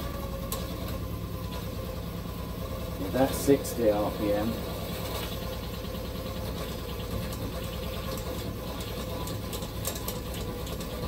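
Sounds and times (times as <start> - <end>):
motor whirring with fine rattle: 0.0 - 11.0.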